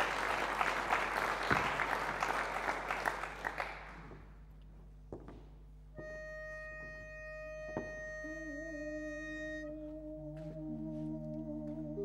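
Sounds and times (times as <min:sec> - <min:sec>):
man humming low note: 0:06.0 - 0:12.0
pitch pipe steady note: 0:06.0 - 0:12.0.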